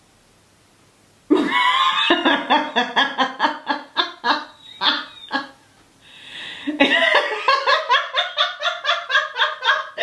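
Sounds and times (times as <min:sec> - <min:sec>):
man laughing hard: 0:01.3 - 0:05.6, 0:06.7 - 0:10.0.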